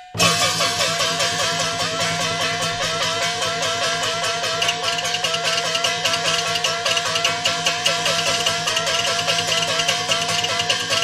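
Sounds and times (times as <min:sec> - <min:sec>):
fast repeated melodic figure: 0:00.0 - 0:11.0
higher ringing part: 0:00.0 - 0:11.0
quick percussion strokes: 0:00.0 - 0:11.0.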